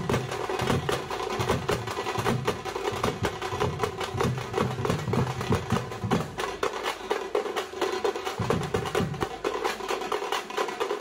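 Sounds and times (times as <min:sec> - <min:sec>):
barrel drum: 0:00.0 - 0:11.0
frame drums beaten with sticks: 0:00.0 - 0:11.0.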